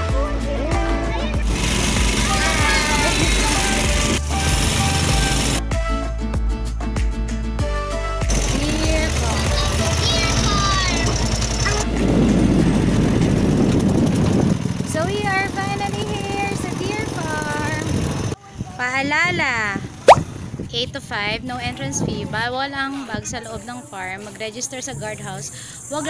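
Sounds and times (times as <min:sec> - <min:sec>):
voices: 0:08.5 - 0:11.9, 0:14.9 - 0:20.0, 0:20.7 - 0:26.0.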